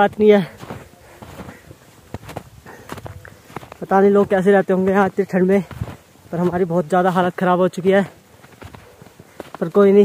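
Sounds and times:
man speaking: 0.0 - 1.6, 3.0 - 8.2, 9.6 - 10.0
footsteps in snow: 0.0 - 10.0.

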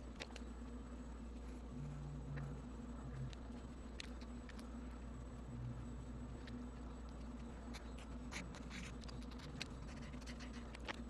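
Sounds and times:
steady low hum: 0.0 - 11.0
pen scratching on paper: 7.4 - 11.0.

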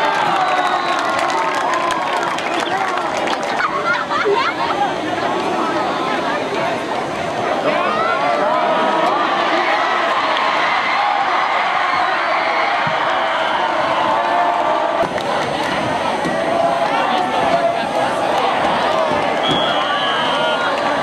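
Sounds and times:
crowd cheering and shouting: 0.0 - 21.0.

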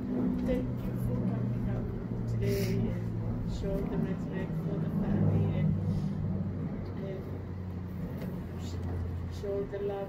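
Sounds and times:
low engine-like hum: 0.0 - 10.0
man speaking: 0.4 - 5.9.

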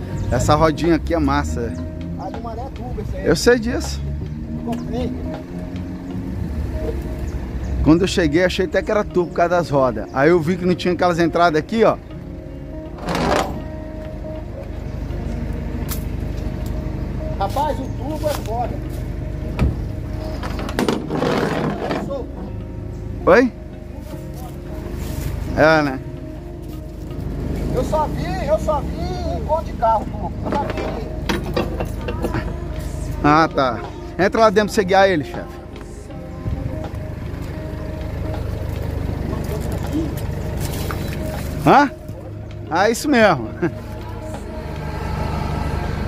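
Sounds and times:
engine idling: 0.0 - 46.0
rustling and handling noise: 24.0 - 25.6, 38.8 - 42.2.

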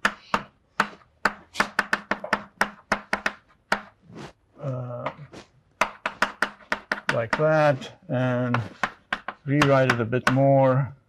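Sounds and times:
chalk tapping on blackboard: 0.0 - 4.0, 5.8 - 7.8, 8.4 - 10.5.

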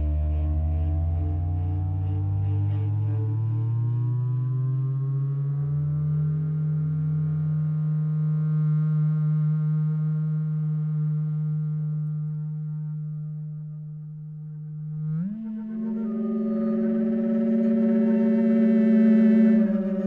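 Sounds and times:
low sustained gliding tone: 0.0 - 20.0
quieter held tones: 11.3 - 20.0.

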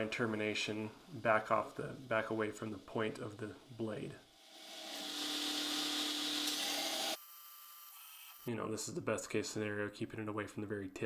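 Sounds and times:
belt grinder grinding steel: 4.4 - 7.2.

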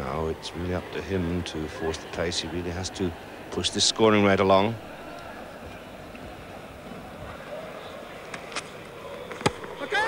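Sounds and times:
stadium crowd murmur: 0.0 - 10.0.

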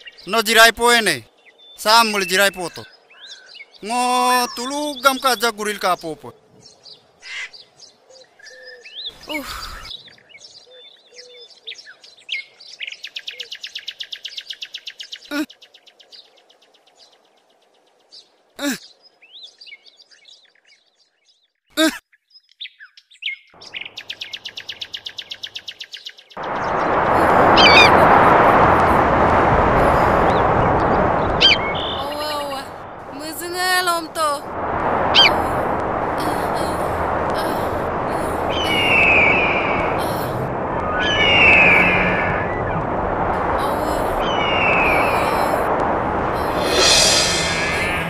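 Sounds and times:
birds calling with rattling trills: 0.0 - 28.0, 30.4 - 34.0, 35.0 - 35.4, 38.4 - 40.0, 40.6 - 45.2
loud steady rushing noise: 26.4 - 48.0.

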